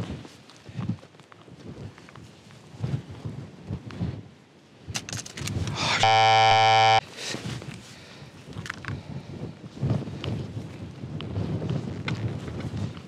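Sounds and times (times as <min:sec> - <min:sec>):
loud harsh buzzer tone: 0:05.9 - 0:07.0.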